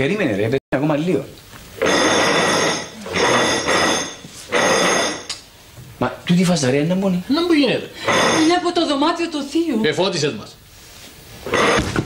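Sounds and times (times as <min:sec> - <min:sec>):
steady metallic ringing: 0:01.8 - 0:05.3.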